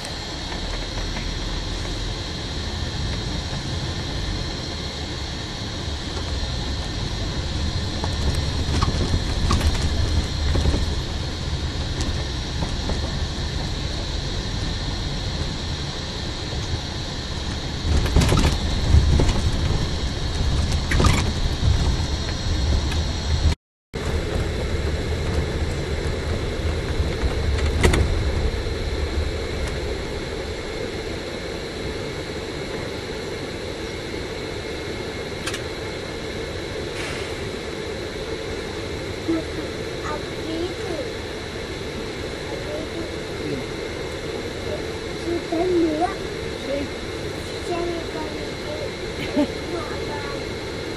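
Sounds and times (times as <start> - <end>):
bus engine and road rumble: 0.0 - 50.9.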